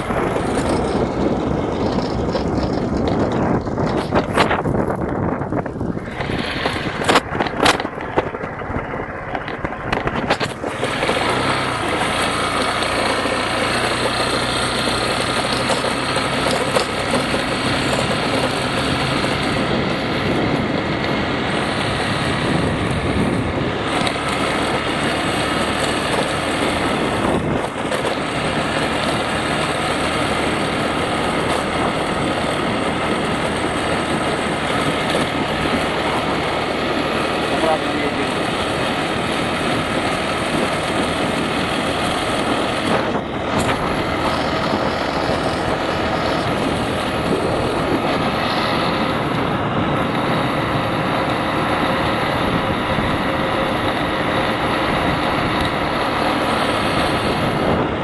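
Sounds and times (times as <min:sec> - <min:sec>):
scooter engine running: 0:00.0 - 0:58.0
wind and road noise: 0:00.0 - 0:58.0.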